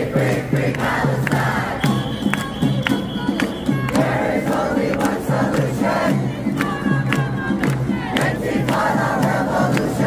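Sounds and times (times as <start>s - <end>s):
crowd chanting and shouting: 0.0s - 10.0s.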